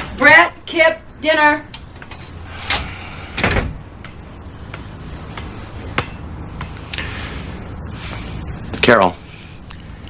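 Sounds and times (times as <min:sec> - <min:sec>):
door thud: 0:02.7 - 0:03.8.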